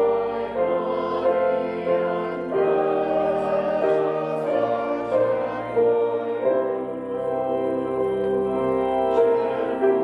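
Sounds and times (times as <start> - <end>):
choir singing held chords: 0.0 - 10.0
sustained accompaniment: 0.0 - 10.0.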